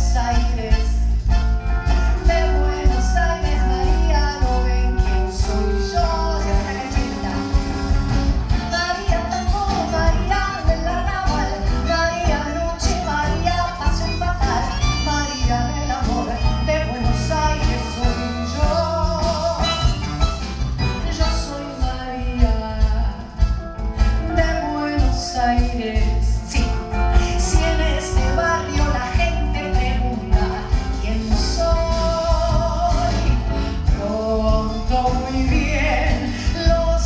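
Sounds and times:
woman singing with vibrato: 0.0 - 20.2, 20.8 - 37.0
acoustic guitar: 0.0 - 37.0
bandoneon: 0.0 - 37.0
drums: 0.0 - 37.0
electric bass: 0.0 - 37.0
piano: 0.0 - 37.0.

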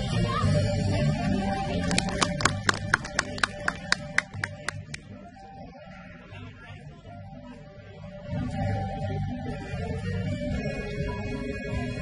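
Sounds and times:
low music: 0.0 - 12.0.

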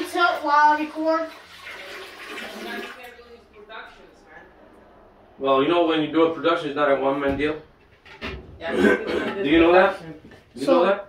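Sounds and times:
water rushing out: 0.0 - 3.2.

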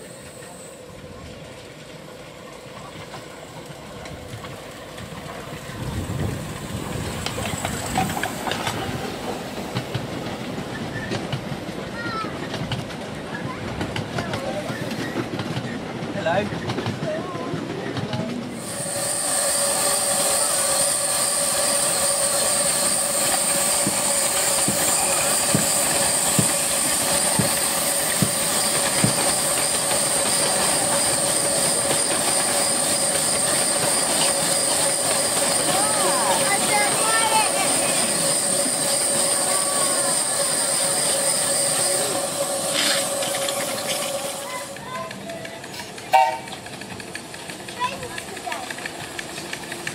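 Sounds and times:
steam locomotive blowing off steam: 0.0 - 16.8, 18.3 - 49.9
wheels clicking over rail joints: 0.4 - 18.8, 19.8 - 49.9.

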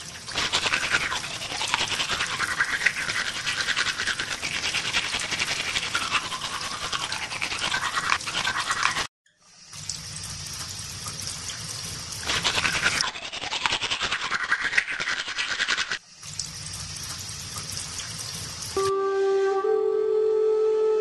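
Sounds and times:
toothbrush scrubbing teeth: 0.0 - 9.1, 12.1 - 16.0.

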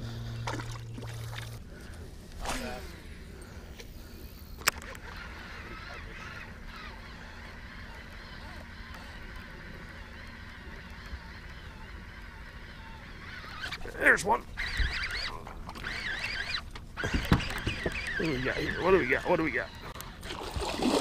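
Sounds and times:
birds calling: 0.0 - 21.0.

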